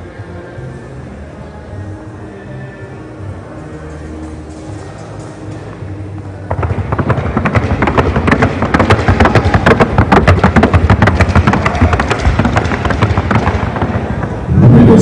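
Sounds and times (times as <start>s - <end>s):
hooves striking wooden board: 6.5s - 14.3s.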